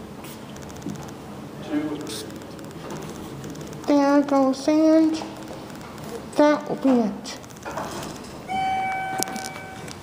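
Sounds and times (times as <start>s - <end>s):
elevator electronic chime: 8.5s - 10.0s.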